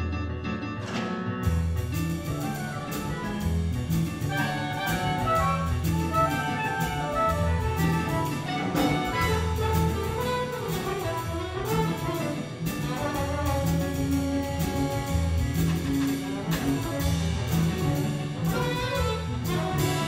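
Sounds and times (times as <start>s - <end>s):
jazz big band playing: 0.0s - 20.0s.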